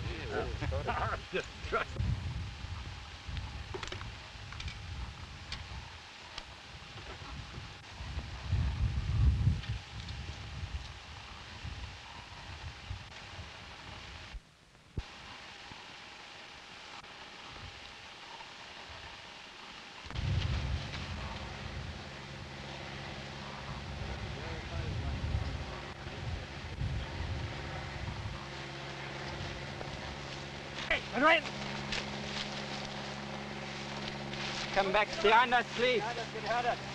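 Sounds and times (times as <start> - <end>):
wind on microphone: 0.0 - 14.4, 20.0 - 30.8
low multi-tone hum: 0.0 - 36.9.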